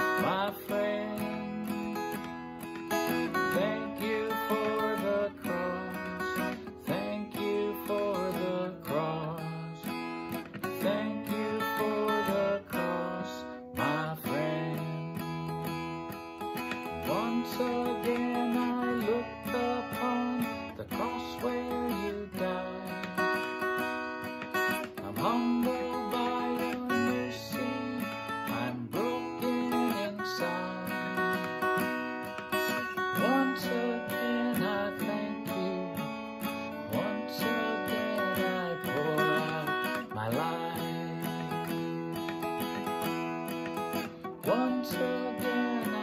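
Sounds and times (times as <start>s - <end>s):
acoustic guitar strumming: 0.0s - 46.0s.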